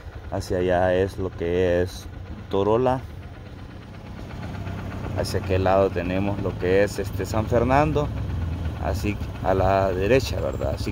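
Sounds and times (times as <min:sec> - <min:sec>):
vehicle engine humming: 0:00.0 - 0:10.9.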